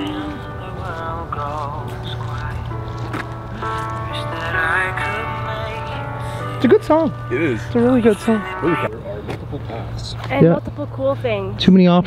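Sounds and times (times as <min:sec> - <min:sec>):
person singing: 0:00.0 - 0:02.8, 0:07.5 - 0:08.9
instrumental backing with bass: 0:00.0 - 0:10.3.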